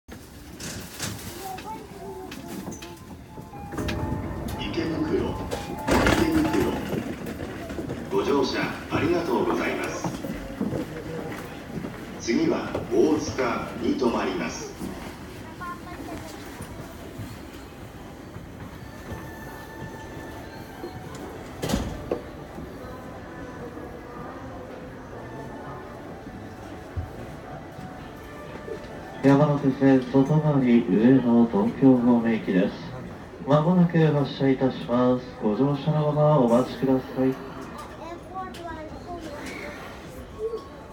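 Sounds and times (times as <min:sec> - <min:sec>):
faint music: 0:00.8 - 0:38.6
indistinct voices: 0:01.6 - 0:18.3.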